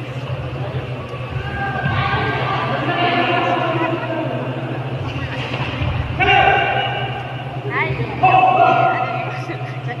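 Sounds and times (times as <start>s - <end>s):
low hum in large hall: 0.0s - 10.0s.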